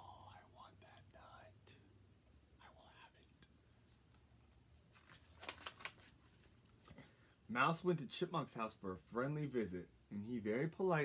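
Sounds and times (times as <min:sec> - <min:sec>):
man whispering: 0:00.0 - 0:03.9
low steady hum: 0:00.0 - 0:11.0.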